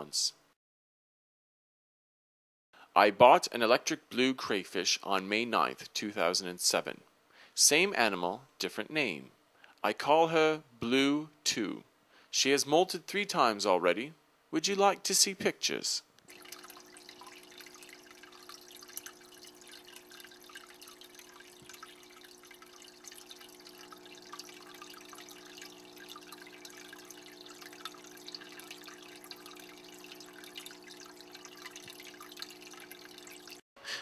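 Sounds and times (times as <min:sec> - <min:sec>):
water trickling and dripping: 0:16.2 - 0:33.6.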